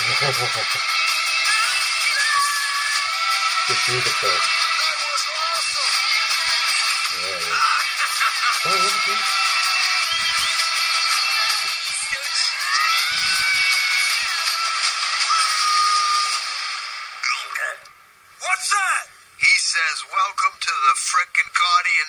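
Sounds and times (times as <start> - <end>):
trailer music with voices: 0.1 - 17.9.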